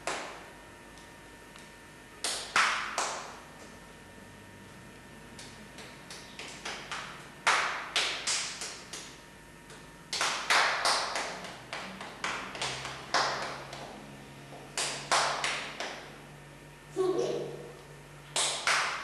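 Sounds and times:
child's hands slapping: 2.2s - 3.3s, 5.4s - 13.9s.

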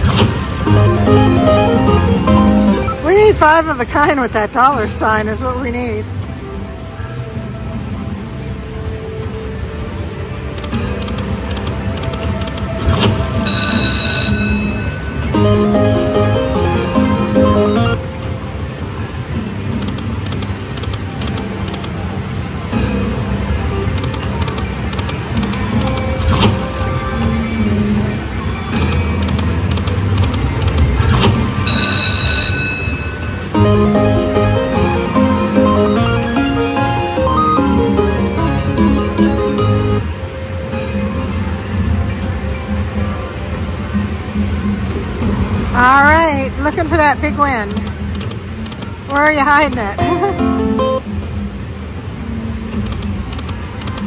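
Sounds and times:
slot machine game music: 0.0s - 5.1s, 10.8s - 19.3s, 22.9s - 40.2s, 49.3s - 51.1s
bright ringing chime: 13.4s - 15.3s, 31.6s - 33.6s
melodic win jingles: 13.4s - 18.0s, 31.6s - 38.7s.

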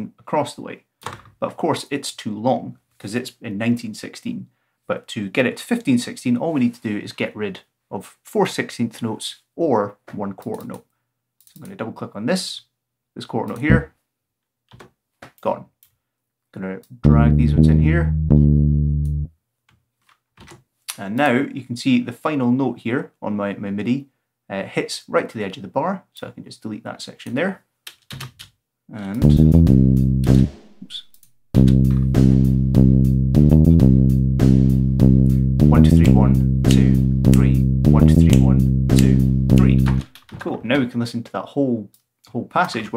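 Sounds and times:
low bass note: 13.7s - 13.9s, 17.0s - 19.3s, 29.2s - 40.0s
drum machine kick and hi-hats: 29.2s - 40.1s.

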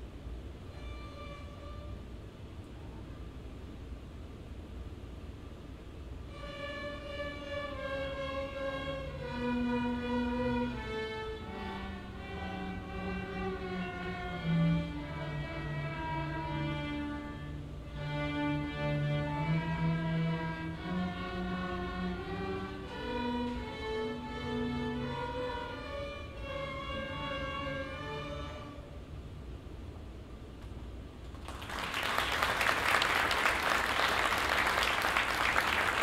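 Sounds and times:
string ensemble playing: 6.3s - 29.2s.

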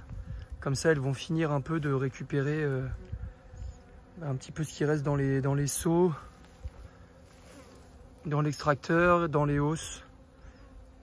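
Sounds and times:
faint buzzing of bees: 0.0s - 11.0s.

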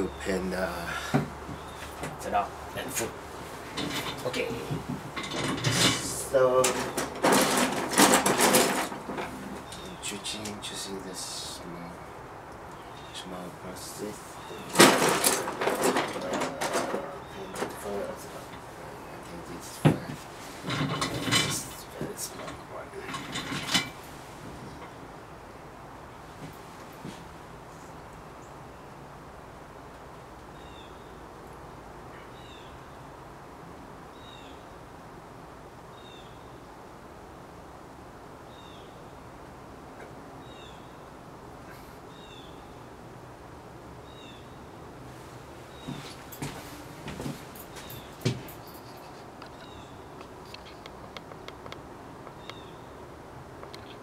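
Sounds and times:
low room noise: 0.0s - 54.0s
paint supplies knocking and clattering: 4.7s - 9.4s, 14.7s - 17.8s.

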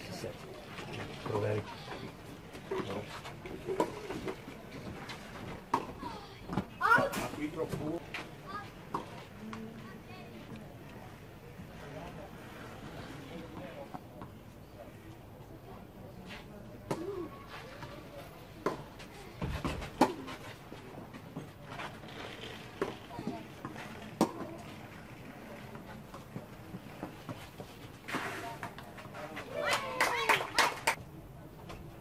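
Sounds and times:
tennis balls struck by rackets: 18.6s - 20.4s, 23.6s - 24.6s.

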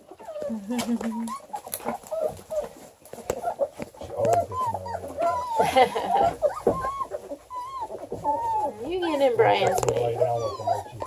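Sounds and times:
puppies whining and squeaking: 0.0s - 11.0s.

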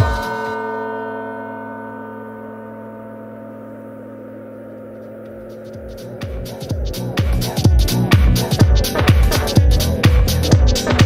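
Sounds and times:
electro house beat: 0.0s - 0.8s, 4.4s - 11.0s
struck chord ringing: 0.0s - 8.8s.

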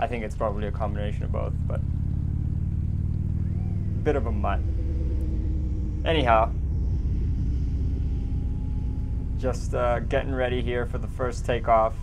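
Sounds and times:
electric motor and propeller hum: 1.8s - 12.0s.

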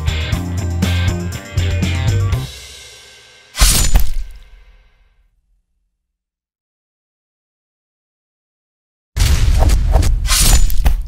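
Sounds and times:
sharp crashes: 3.5s - 5.0s, 9.2s - 11.0s.

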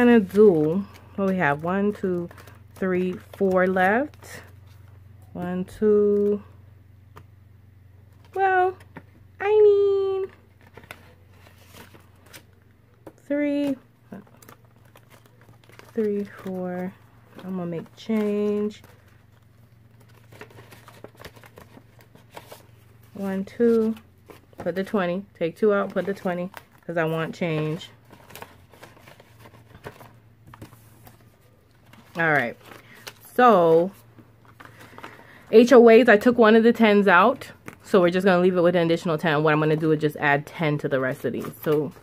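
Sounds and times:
paper bills and plastic rustling: 0.0s - 6.5s, 8.1s - 42.0s
low steady hum: 0.0s - 42.0s.

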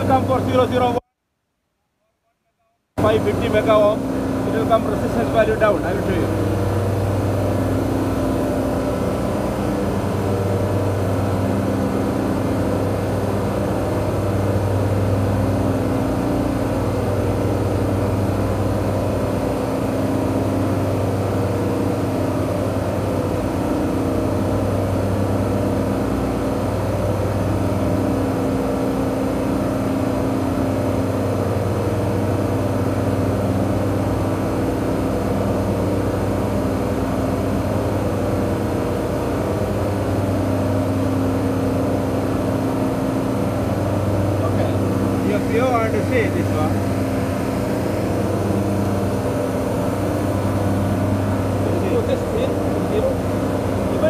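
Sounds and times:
low machinery hum: 0.0s - 1.0s, 3.0s - 54.0s.

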